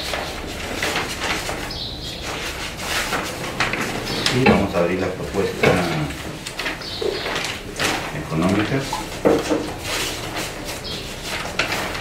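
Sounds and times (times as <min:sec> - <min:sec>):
paper rustling: 0:00.0 - 0:12.0.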